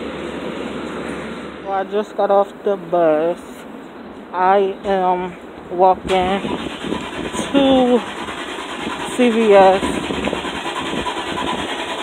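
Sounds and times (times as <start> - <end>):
city street traffic: 0.0 - 12.0
low engine rumble: 0.0 - 12.0.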